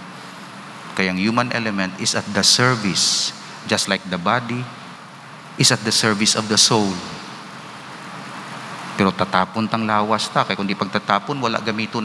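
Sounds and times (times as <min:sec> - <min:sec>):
room tone hiss and rumble: 0:00.0 - 0:12.0.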